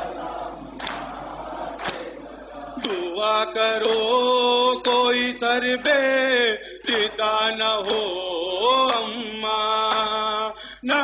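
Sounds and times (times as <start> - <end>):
congregational chanting: 0.0 - 11.0.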